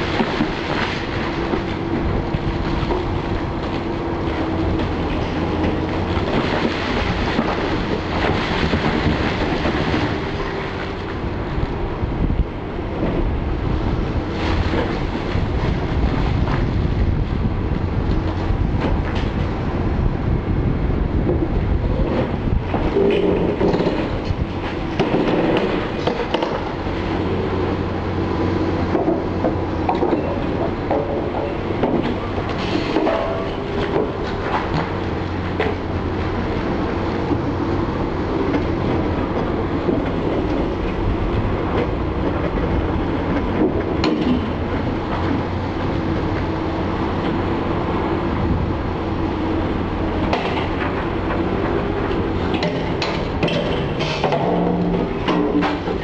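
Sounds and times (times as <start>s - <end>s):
excavator engine and hydraulics: 0.0s - 56.0s.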